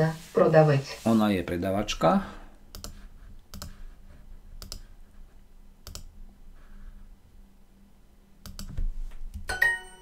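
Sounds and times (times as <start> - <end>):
computer mouse clicks: 2.7 - 3.8, 4.6 - 5.0, 5.8 - 6.2, 8.4 - 9.5.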